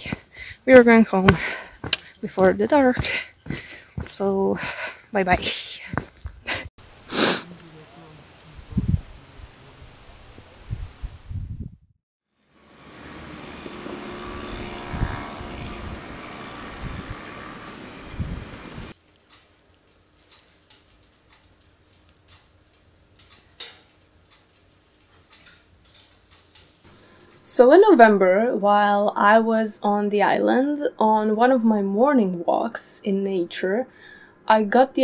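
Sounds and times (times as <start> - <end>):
low wind rumble: 0.0 - 11.9, 12.8 - 19.0
wood fire crackling and popping: 19.0 - 27.0.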